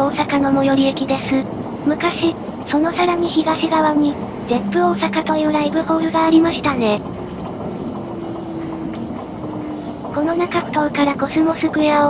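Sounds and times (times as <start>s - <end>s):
train running noise: 0.0s - 12.0s
steady motor whine: 4.5s - 10.1s.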